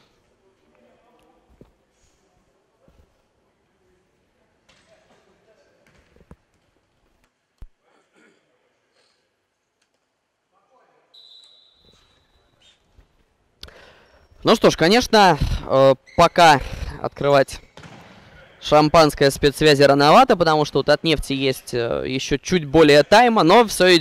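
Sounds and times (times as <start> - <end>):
referee's whistle: 11.1 - 12.5
ball kicked and bouncing: 17.8 - 18.2.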